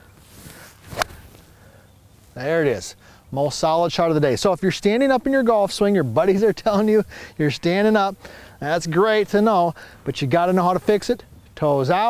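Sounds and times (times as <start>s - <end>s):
golf club swish: 0.2s - 1.5s.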